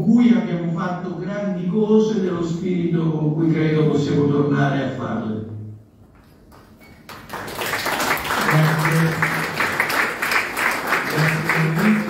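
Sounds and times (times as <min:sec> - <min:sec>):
man's voice: 0:00.0 - 0:05.6, 0:08.4 - 0:09.6, 0:11.0 - 0:12.0
audience applauding: 0:06.5 - 0:12.0.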